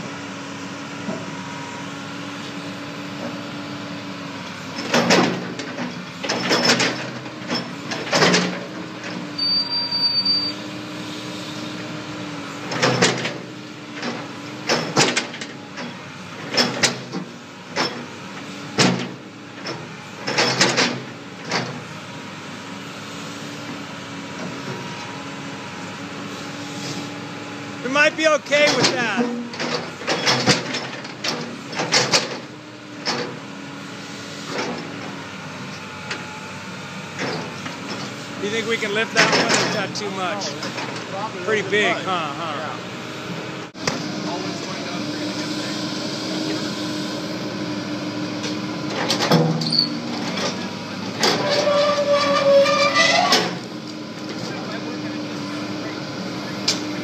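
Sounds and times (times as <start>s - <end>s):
excavator engine hum: 0.0s - 57.0s
excavator bucket crushing concrete: 4.8s - 8.7s, 28.1s - 32.5s, 39.0s - 41.1s.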